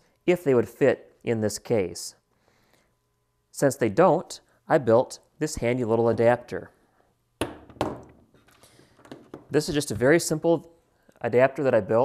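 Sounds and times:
board knocking on tabletop: 7.4s - 8.1s.

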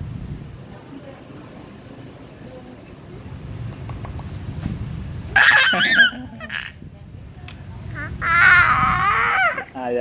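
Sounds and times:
toddler squealing with laughter: 5.4s - 6.8s, 8.0s - 9.7s.

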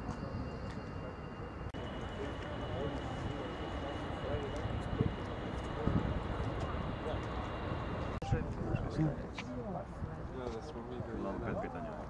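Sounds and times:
faint high-pitched whine: 0.0s - 9.2s
distant voices: 0.0s - 11.1s
open-air background noise: 0.0s - 12.0s.

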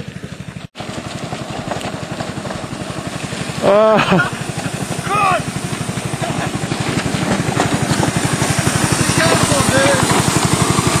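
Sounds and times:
go-kart engine running: 0.0s - 11.0s
person laughing: 3.6s - 4.8s, 6.2s - 6.7s.

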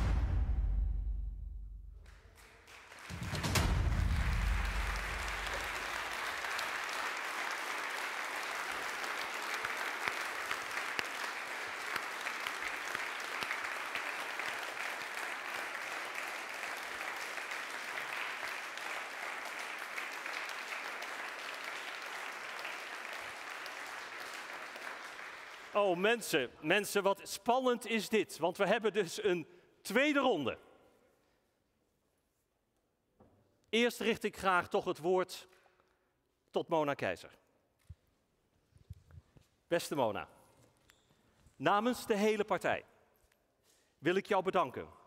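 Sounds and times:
deep booming hit: 0.0s - 1.9s, 3.2s - 5.3s
audience applauding: 2.0s - 26.3s
drumroll: 3.1s - 5.9s.

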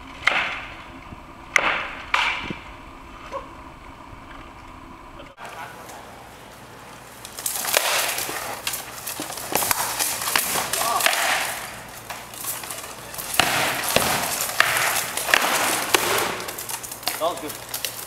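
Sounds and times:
weapons cracking against shield: 7.6s - 11.8s, 13.2s - 16.6s.

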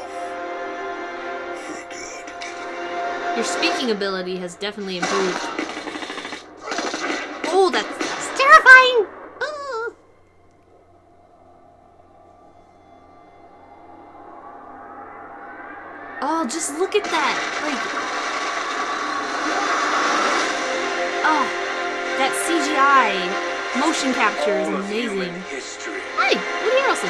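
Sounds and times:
rapid gunfire: 5.0s - 8.6s, 17.0s - 20.8s
rising and falling cry: 9.3s - 16.5s.

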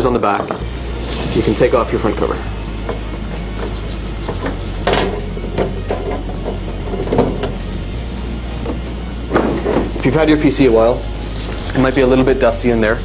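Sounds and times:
background music: 0.0s - 13.0s
metallic clunks and scrapes: 0.4s - 10.2s
metal case cover sliding off: 2.9s - 7.8s, 8.5s - 10.1s.

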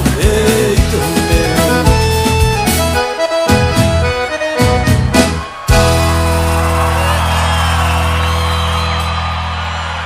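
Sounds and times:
accordion-led instrumental music: 0.0s - 8.3s.

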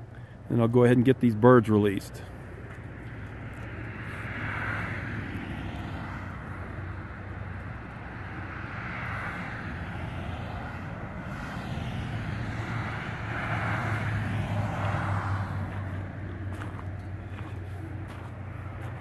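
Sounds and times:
traffic passing: 0.0s - 19.0s.

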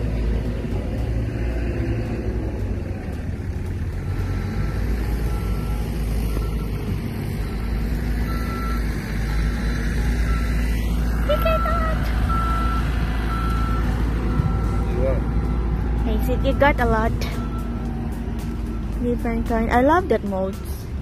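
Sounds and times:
diesel engine running: 0.0s - 21.0s
back-up alarm beeping: 4.0s - 17.8s.

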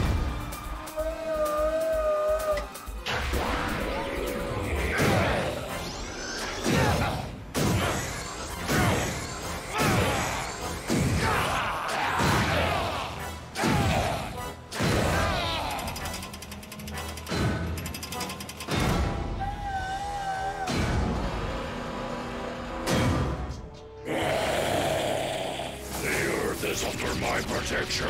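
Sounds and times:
dramatic background music: 0.0s - 28.0s.

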